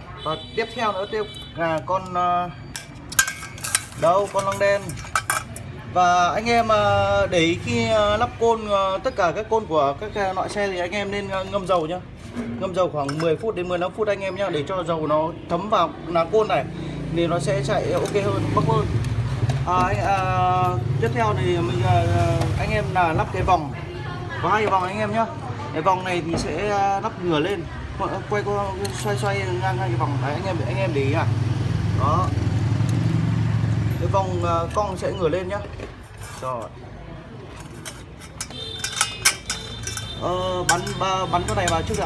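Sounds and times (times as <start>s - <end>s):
metal parts clicking and clinking: 1.8s - 5.7s, 28.8s - 29.3s, 37.5s - 42.0s.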